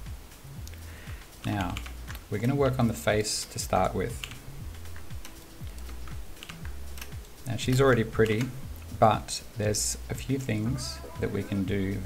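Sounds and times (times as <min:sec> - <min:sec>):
kick drum thumps: 0:00.0 - 0:00.3, 0:03.7 - 0:07.9
quiet background music: 0:00.0 - 0:12.0
keyboard and mouse clicks: 0:00.7 - 0:02.6, 0:03.8 - 0:08.9.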